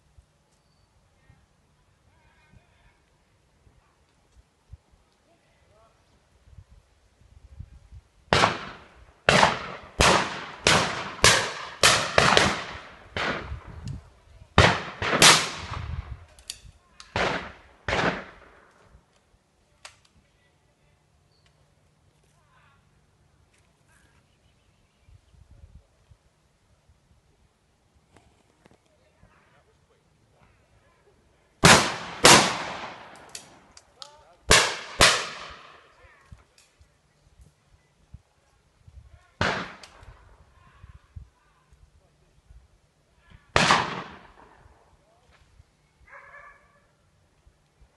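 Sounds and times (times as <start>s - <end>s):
shotgun shots echoing: 8.3s - 13.7s, 14.6s - 16.0s, 17.1s - 18.7s, 31.6s - 33.7s, 34.5s - 35.9s, 39.4s - 40.0s, 43.6s - 44.6s
faint sharp cracks: 16.2s - 20.2s, 31.9s - 36.9s, 39.4s - 40.2s.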